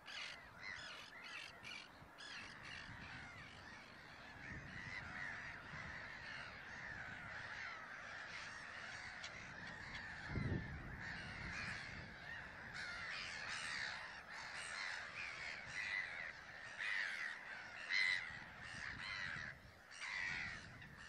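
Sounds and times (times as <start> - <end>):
flock of gulls calling: 0.0 - 21.0.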